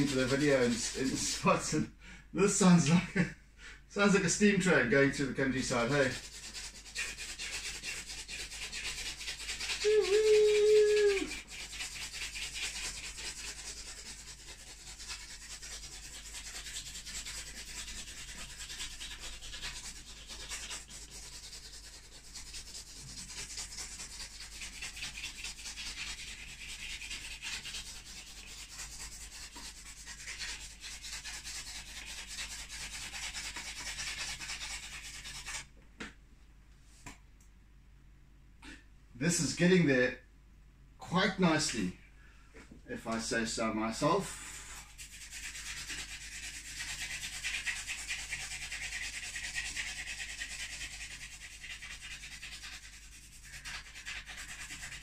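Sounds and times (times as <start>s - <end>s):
charcoal scratching on canvas: 0.0s - 1.8s, 4.6s - 35.7s, 44.5s - 55.0s.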